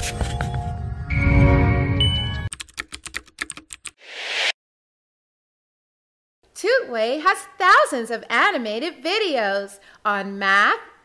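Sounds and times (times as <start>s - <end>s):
music: 0.0s - 2.5s
keyboard typing clicks: 2.5s - 4.0s
whoosh: 4.0s - 4.6s.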